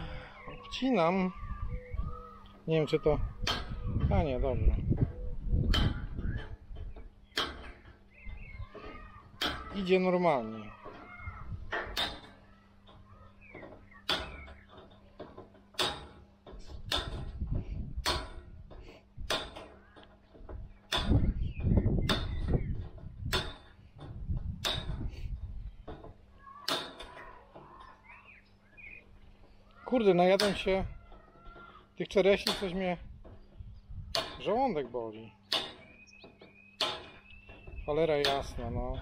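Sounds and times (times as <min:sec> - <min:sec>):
wire mesh rattling: 0:02.6 - 0:39.0
wire cutters snipping mesh: 0:06.8 - 0:07.9, 0:11.7 - 0:12.4, 0:15.7 - 0:17.4, 0:18.0 - 0:20.2, 0:20.9 - 0:21.2, 0:23.3 - 0:25.1, 0:26.5 - 0:27.4, 0:29.8 - 0:30.8, 0:32.2 - 0:33.4, 0:34.1 - 0:34.8, 0:35.5 - 0:36.1.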